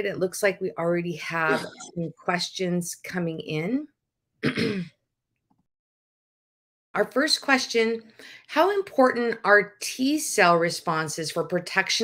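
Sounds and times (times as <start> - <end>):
person clearing throat: 1.5 - 1.9, 4.4 - 5.0.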